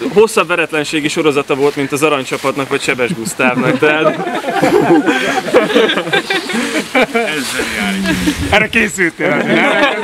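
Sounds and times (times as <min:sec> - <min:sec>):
men talking: 0:00.0 - 0:10.0
men laughing: 0:02.8 - 0:10.0.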